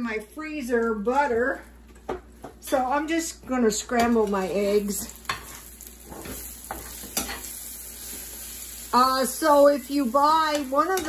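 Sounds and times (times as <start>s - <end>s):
eggs and bacon sizzling in pan: 0.0s - 11.0s.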